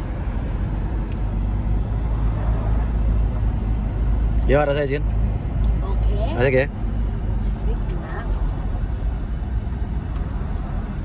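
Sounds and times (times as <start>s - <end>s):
car engine low rumble: 0.0s - 11.0s
road noise: 0.0s - 11.0s.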